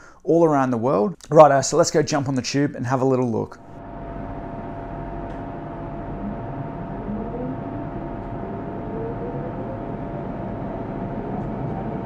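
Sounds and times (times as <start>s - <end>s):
train whine rising in pitch: 3.8s - 12.0s
train rumble and hiss: 4.0s - 12.0s.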